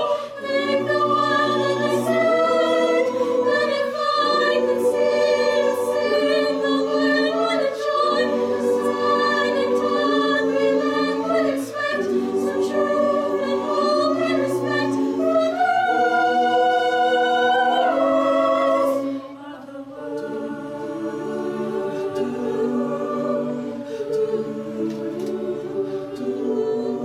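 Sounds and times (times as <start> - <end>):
choir singing: 0.0 - 27.0.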